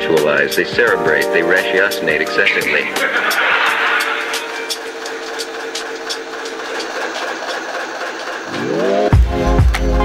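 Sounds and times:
hip-hop beat: 0.1s - 6.3s.

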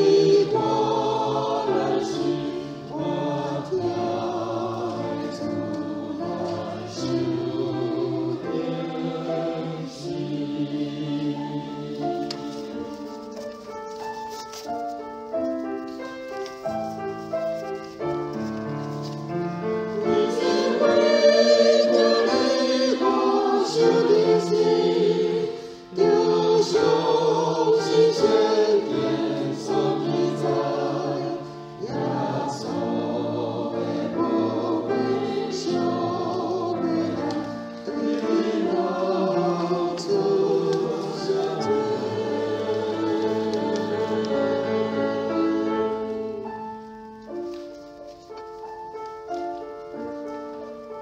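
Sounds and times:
church choir singing a hymn: 0.0s - 14.4s, 18.4s - 47.6s.

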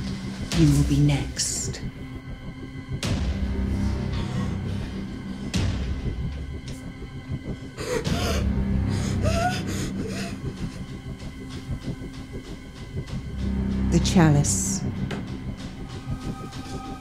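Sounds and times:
dark droning film score: 0.0s - 17.0s
woman whimpering and gasping: 7.8s - 11.0s.

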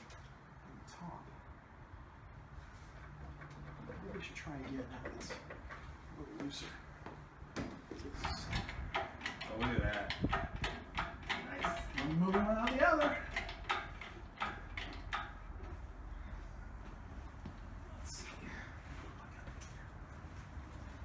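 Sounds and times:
clicks and knocks of hand work: 3.0s - 6.0s, 7.5s - 15.8s.

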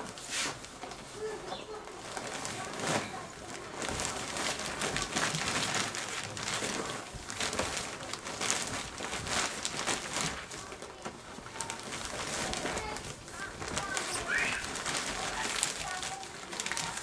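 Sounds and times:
plastic rustling and crinkling: 0.0s - 17.0s.

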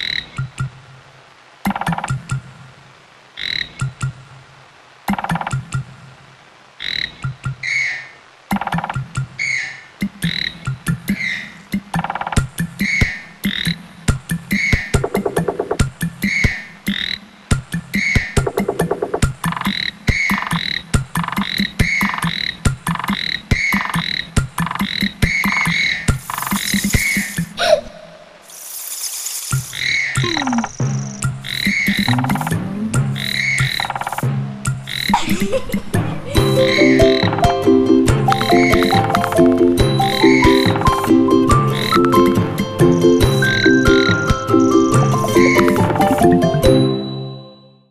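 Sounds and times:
tree frog croaking: 1.6s - 2.4s, 3.4s - 4.2s, 5.1s - 5.8s, 6.8s - 13.9s, 16.3s - 17.3s, 18.0s - 27.5s, 29.6s - 35.2s, 36.6s - 37.6s, 38.2s - 42.3s
low musical notes: 31.9s - 33.4s, 35.9s - 47.5s.

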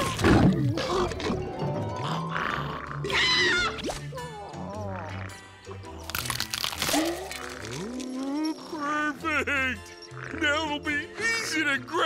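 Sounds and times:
background music: 0.0s - 12.0s
eggshell cracking and shattering: 5.9s - 8.7s.

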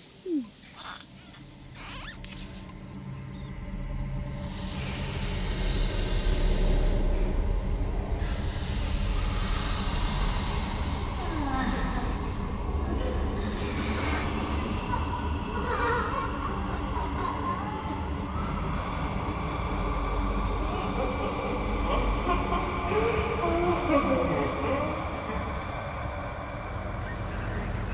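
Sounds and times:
low steady drone: 1.3s - 27.9s.

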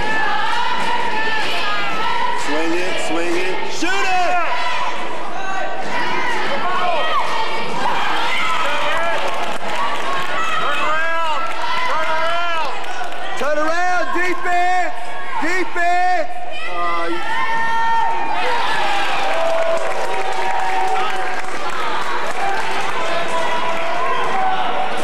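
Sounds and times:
crowd talking: 0.0s - 25.0s.

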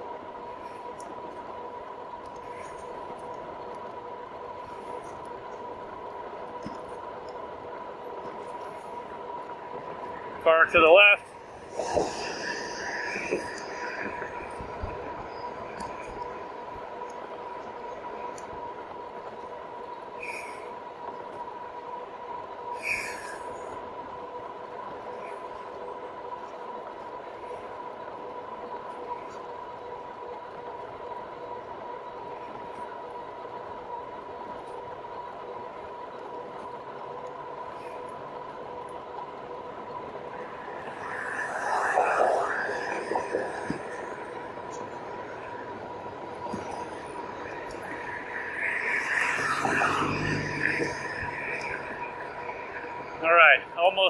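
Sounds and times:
wind noise: 0.0s - 21.4s, 39.0s - 53.2s
hub motor whining: 0.0s - 54.0s
rush of noise: 0.0s - 54.0s.

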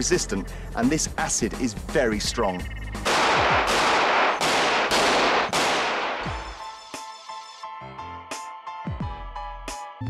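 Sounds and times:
music: 0.0s - 3.7s, 6.2s - 10.0s.

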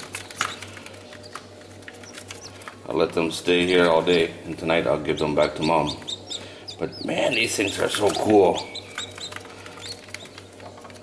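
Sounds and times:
chicks peeping: 0.0s - 11.0s
steady low hum: 0.0s - 11.0s.

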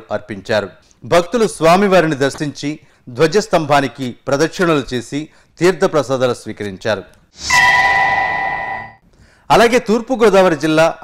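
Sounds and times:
whoosh: 7.4s - 9.0s
bright bell-like chime: 7.5s - 9.0s.

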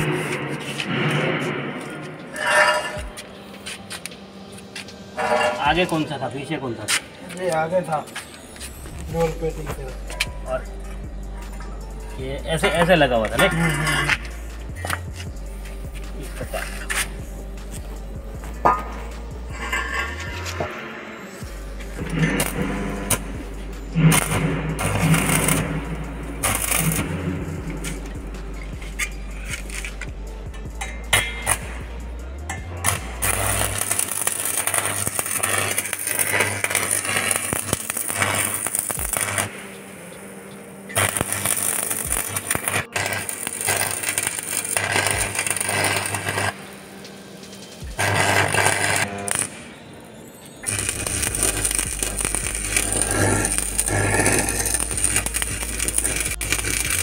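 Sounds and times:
arc welder crackling and hissing: 0.0s - 57.0s
background music with bass line: 8.6s - 39.6s, 50.6s - 57.0s.

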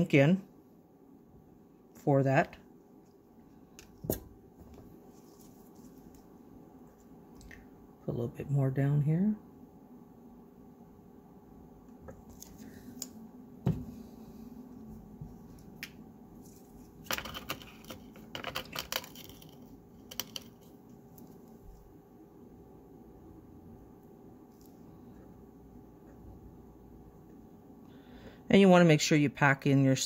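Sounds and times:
faint room hum: 0.0s - 30.0s
knock on work surface: 13.6s - 13.9s.

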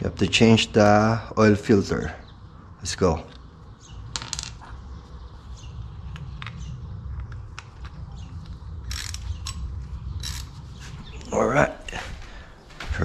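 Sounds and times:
steady low rumble: 0.0s - 13.0s.

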